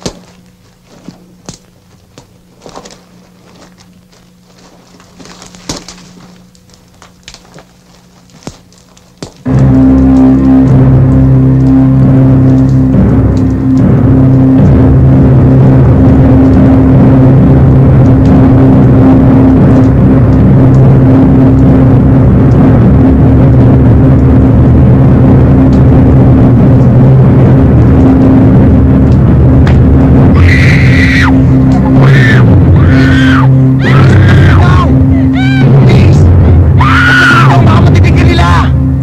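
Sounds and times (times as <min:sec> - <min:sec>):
low drone: 0:00.0 - 0:39.0
high wavering tones: 0:25.9 - 0:36.8.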